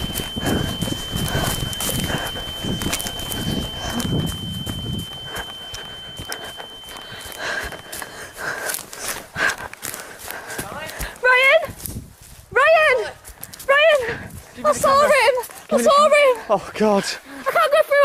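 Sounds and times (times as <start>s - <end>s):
faint high whine: 0.0s - 9.2s
person breathing heavily: 0.0s - 11.2s
footsteps through dry leaves: 7.2s - 13.7s.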